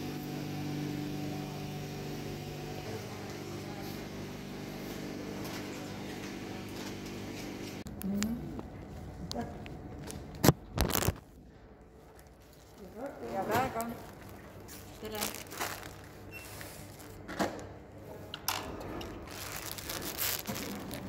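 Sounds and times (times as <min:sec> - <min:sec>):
plastic packaging crinkling: 0:10.3 - 0:11.3, 0:12.1 - 0:17.3, 0:19.0 - 0:21.0.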